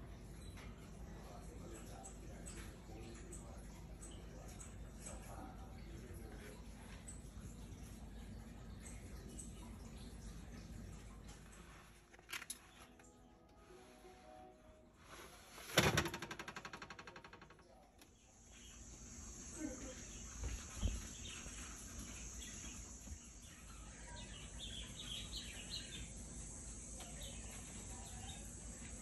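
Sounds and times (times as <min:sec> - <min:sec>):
faint chirps: 0:16.3 - 0:29.0.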